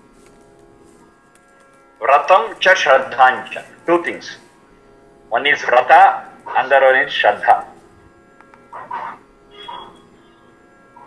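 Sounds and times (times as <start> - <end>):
electrical hum and buzz: 0.0 - 11.0.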